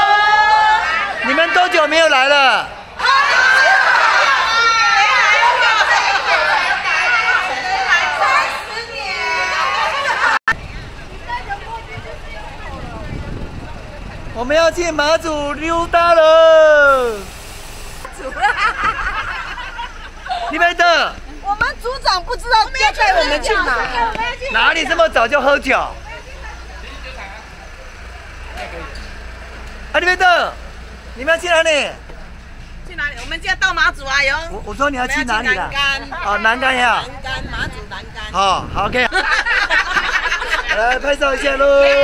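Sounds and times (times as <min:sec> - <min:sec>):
burst of group voices: 0:00.0 - 0:10.4, 0:16.2 - 0:17.4
coach engine idling: 0:00.5 - 0:42.0
people chatting: 0:00.9 - 0:17.3, 0:18.0 - 0:29.1, 0:30.0 - 0:30.6, 0:32.9 - 0:42.0.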